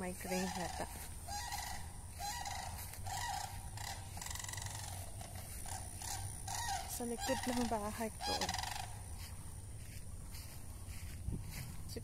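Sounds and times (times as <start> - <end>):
chickens calling: 0.0 - 11.8
steady high hum: 0.0 - 12.0.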